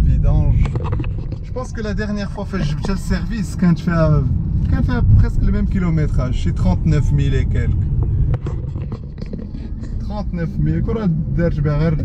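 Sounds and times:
car engine low rumble: 0:00.0 - 0:12.0
road noise: 0:00.0 - 0:12.0
man talking: 0:01.5 - 0:07.8, 0:10.0 - 0:12.0.

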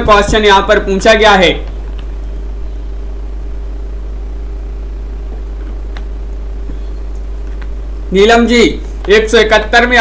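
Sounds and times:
low electrical hum: 0:00.0 - 0:10.0
faint high steady tone: 0:02.1 - 0:08.4.

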